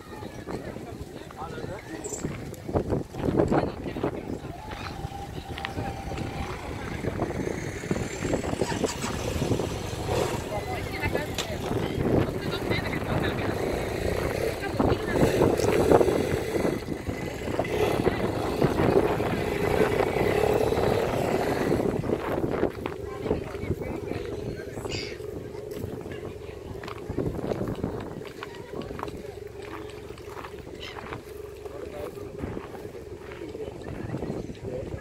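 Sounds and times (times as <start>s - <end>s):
motor vehicle running: 0.0s - 35.0s
people chattering: 0.0s - 35.0s.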